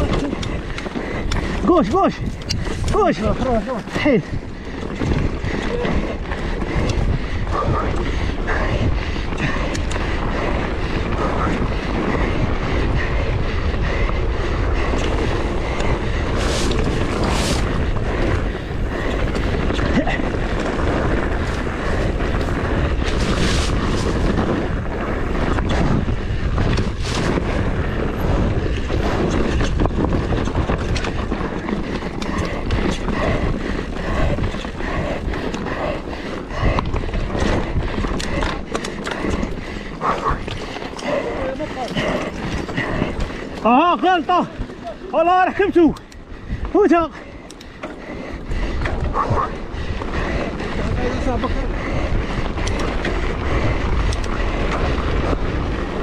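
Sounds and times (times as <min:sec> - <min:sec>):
bike rattling: 0:00.0 - 0:56.0
tyres on loose dirt and gravel: 0:00.0 - 0:56.0
wind buffeting microphone: 0:00.0 - 0:56.0.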